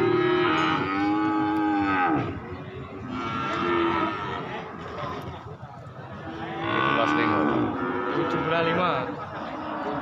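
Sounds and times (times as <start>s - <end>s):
cattle mooing: 0.0s - 2.4s, 6.4s - 8.8s.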